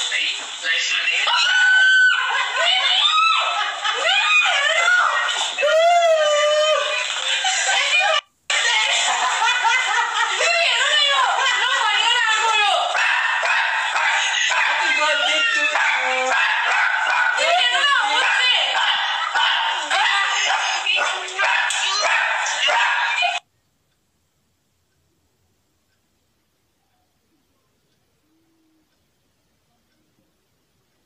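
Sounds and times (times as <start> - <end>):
people shrieking: 1.3 - 7.1
people laughing: 1.6 - 23.4
people talking excitedly: 10.1 - 13.0, 13.8 - 23.4.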